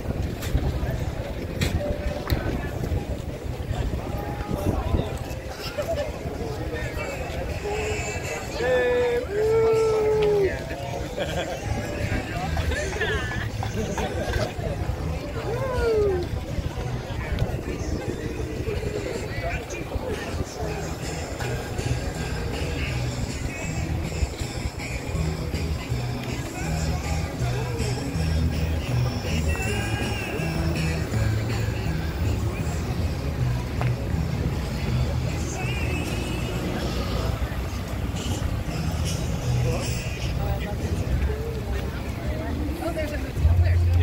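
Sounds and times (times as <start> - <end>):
indistinct voices: 0.0 - 44.0
people talking: 0.0 - 44.0.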